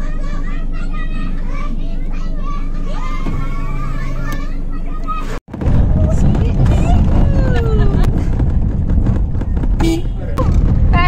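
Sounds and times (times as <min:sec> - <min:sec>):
children calling out: 0:00.0 - 0:05.4
vehicle engine hum: 0:00.0 - 0:11.0.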